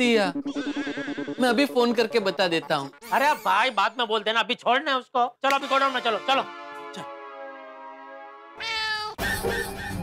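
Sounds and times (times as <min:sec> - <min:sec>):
cat meow: 0:08.6 - 0:09.2.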